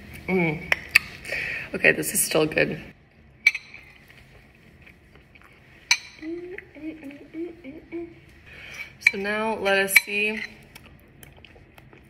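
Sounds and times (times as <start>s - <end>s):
metal spoon clinking bowl: 3.4s - 4.0s, 5.9s - 6.4s, 8.7s - 10.6s.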